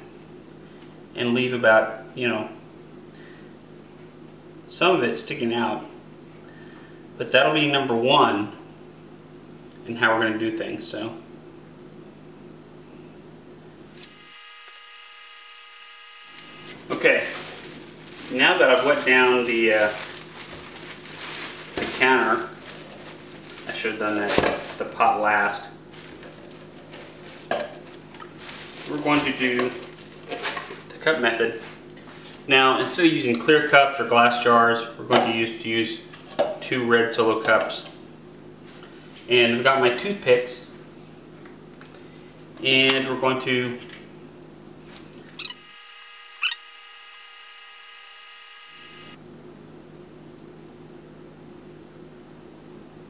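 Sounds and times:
room hum: 0.0s - 53.0s
faint handling noise: 16.7s - 25.2s, 25.9s - 32.4s.

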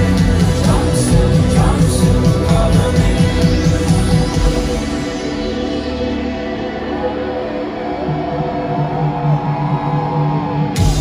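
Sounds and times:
electric bass riff: 0.0s - 11.0s.

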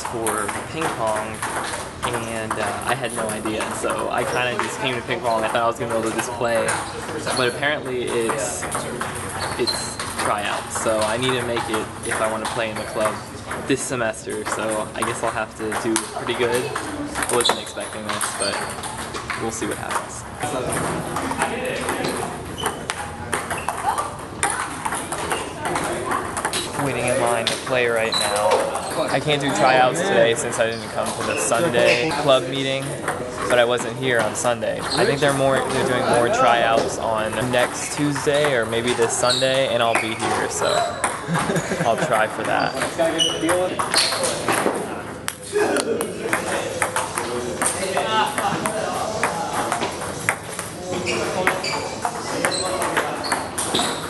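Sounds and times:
people talking: 0.0s - 18.7s, 19.4s - 22.5s, 25.2s - 44.7s, 45.5s - 50.1s, 50.8s - 53.9s
table tennis balls clicking: 0.0s - 54.0s
voices in a hall: 0.0s - 54.0s.

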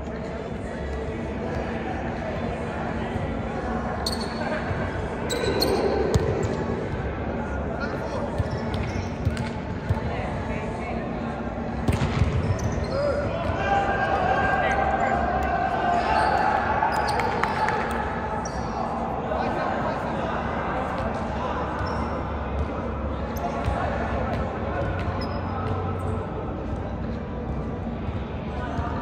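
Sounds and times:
players' voices echoing: 0.0s - 29.0s.

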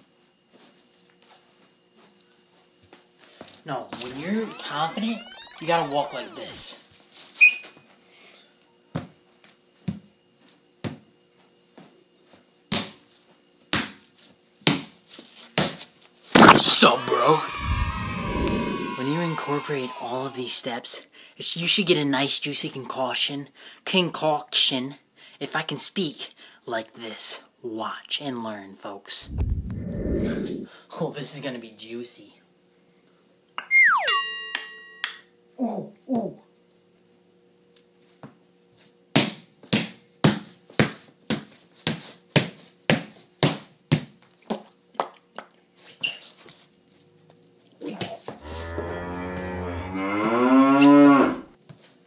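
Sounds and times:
falling whistle-like ringing tone: 4.0s - 6.8s, 16.8s - 20.6s, 33.6s - 35.1s
short falling vocal sounds: 4.1s - 6.6s, 16.4s - 20.4s, 29.3s - 30.7s, 33.7s - 34.2s.

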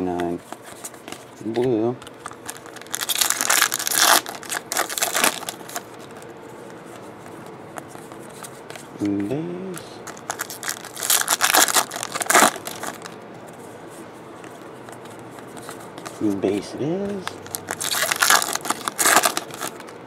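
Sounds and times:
foil wrapper tearing and crinkling: 2.2s - 6.0s, 10.1s - 13.2s, 17.1s - 20.0s.

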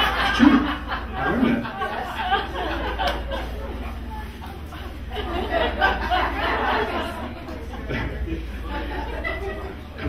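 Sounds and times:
audience chattering: 0.0s - 10.0s
audience laughing: 0.0s - 10.0s.

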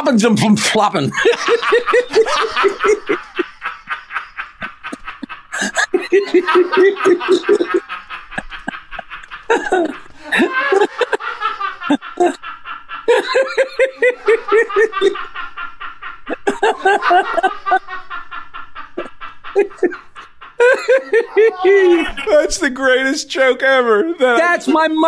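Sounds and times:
people laughing hard: 0.7s - 25.0s.

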